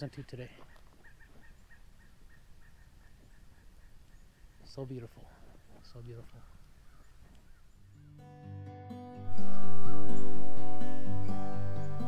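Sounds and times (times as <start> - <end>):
distant bird calling: 0.5 - 8.3.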